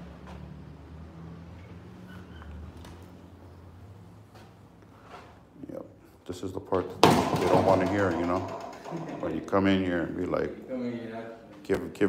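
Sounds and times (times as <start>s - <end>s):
man talking: 5.6s - 12.0s.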